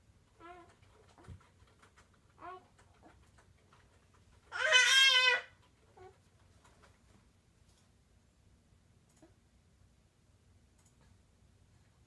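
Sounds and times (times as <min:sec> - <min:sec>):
baby squealing: 0:04.5 - 0:05.5.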